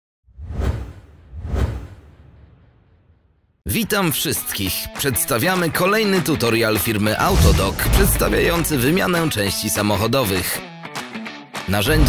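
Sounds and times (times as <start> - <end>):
whoosh sound effects: 0.4 - 3.2, 7.2 - 9.0
deep low rumble: 7.2 - 9.0.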